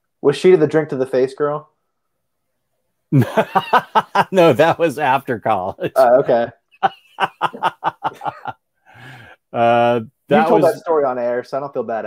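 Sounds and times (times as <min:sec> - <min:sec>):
man chuckling: 0:03.2 - 0:10.8.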